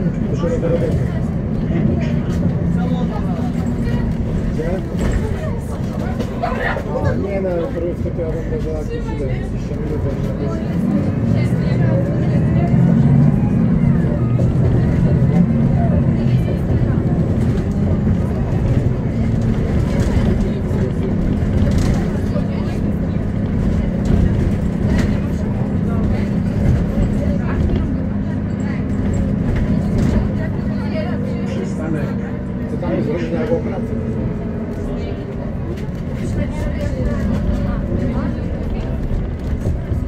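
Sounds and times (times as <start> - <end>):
bus diesel engine drone: 0.0 - 40.0.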